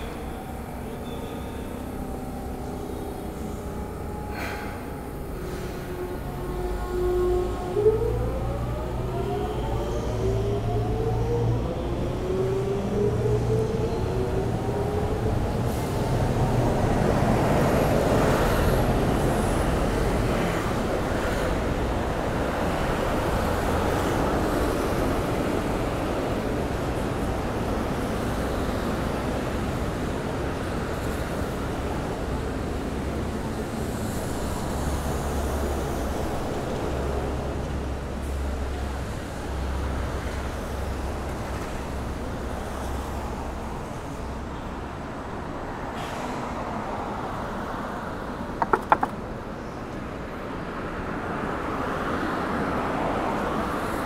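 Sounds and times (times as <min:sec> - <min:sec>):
streetcar motors whining: 0:00.0 - 0:50.2
streetcar rumble: 0:00.0 - 0:54.0
traffic hiss on wet road: 0:45.8 - 0:48.0, 0:51.2 - 0:54.0.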